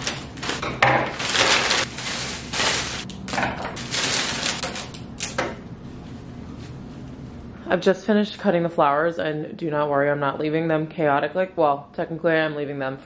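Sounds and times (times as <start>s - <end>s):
paper and cellophane crinkling: 0.0s - 5.3s.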